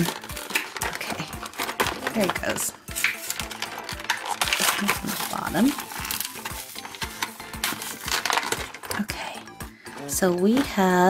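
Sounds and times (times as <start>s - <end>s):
plastic blister packaging crackling: 0.0s - 11.0s.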